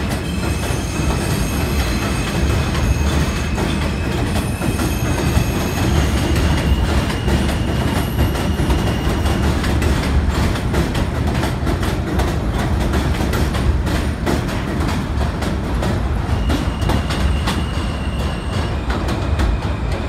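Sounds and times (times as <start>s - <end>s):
train wheel and rail rumble: 0.0s - 20.0s.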